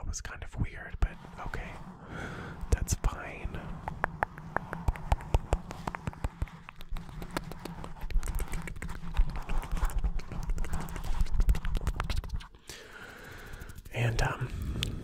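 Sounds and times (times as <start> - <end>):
hands rubbing microphone: 0.0 - 15.0
wet mouth clicks and kisses: 4.2 - 12.5.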